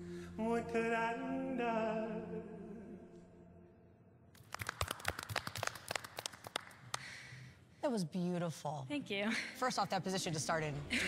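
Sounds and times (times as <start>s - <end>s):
people clapping hands: 4.4s - 7.5s.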